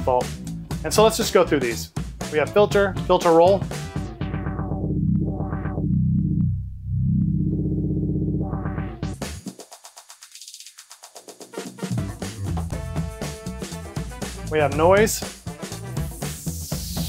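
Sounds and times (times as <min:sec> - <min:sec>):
filtered electronic dance music: 0:02.4 - 0:17.0.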